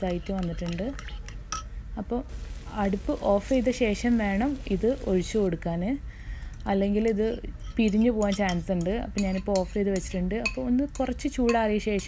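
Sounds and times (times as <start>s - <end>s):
woman talking: 0.0s - 1.0s, 2.0s - 6.0s, 6.7s - 12.0s
metal spoon clinking bowl: 0.2s - 1.7s, 7.6s - 12.0s.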